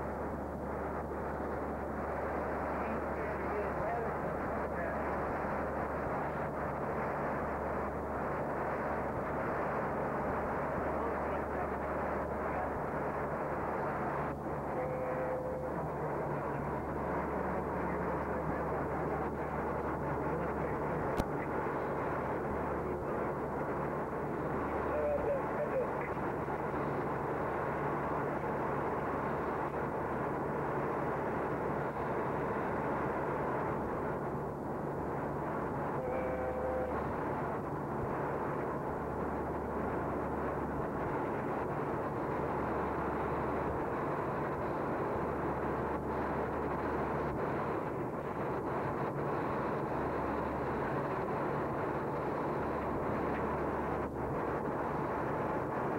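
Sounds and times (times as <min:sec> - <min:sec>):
rush of airflow: 0:00.0 - 0:36.0, 0:36.8 - 0:55.9
low engine hum: 0:00.0 - 0:55.9.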